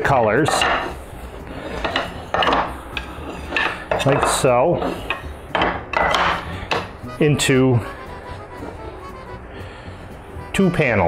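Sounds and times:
wood sliding on workbench: 0.6 - 6.9
wooden strips knocking together: 1.8 - 4.4, 5.1 - 7.0.

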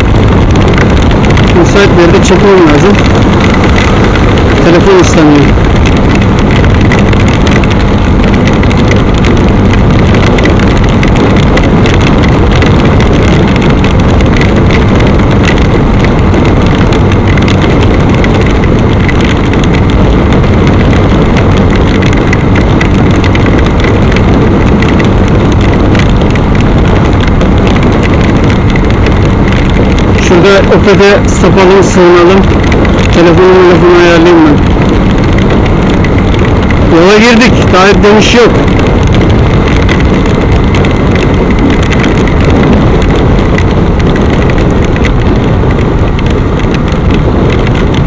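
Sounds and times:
motorcycle engine hum: 0.0 - 48.0
wind and rain on microphone: 0.0 - 48.0.

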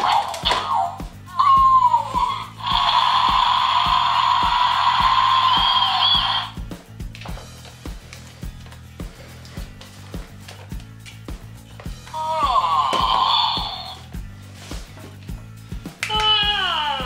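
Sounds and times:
electronic toy sound effect: 0.0 - 6.6, 12.6 - 14.0
background music with steady beat: 0.0 - 17.0.

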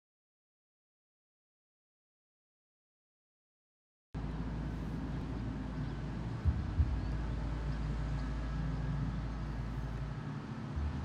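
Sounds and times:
outdoor low rumble: 4.2 - 11.0.

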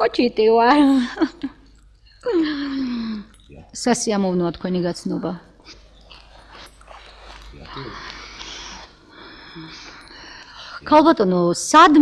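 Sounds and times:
faint room hum: 0.0 - 12.0
whimpering whining voice: 5.6 - 8.8.

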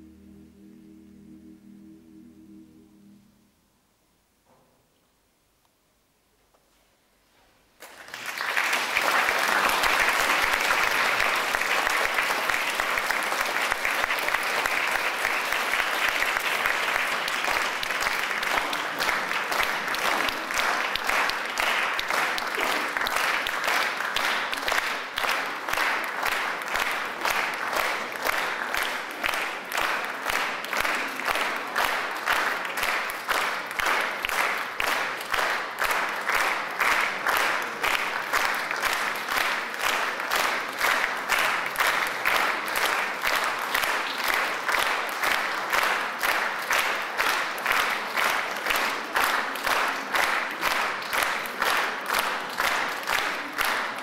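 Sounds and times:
audience applause: 7.8 - 54.0.

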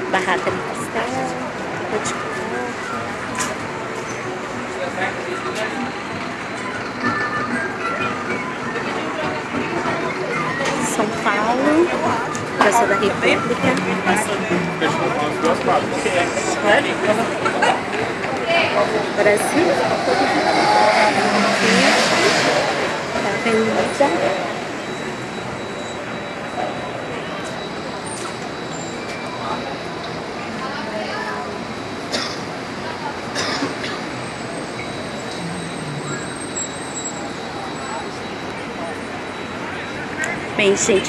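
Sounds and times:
distant voices chattering: 0.0 - 41.0
people talking: 0.0 - 41.0
road traffic hum: 0.0 - 41.0
passing car rushing: 13.4 - 25.5, 34.0 - 38.1.

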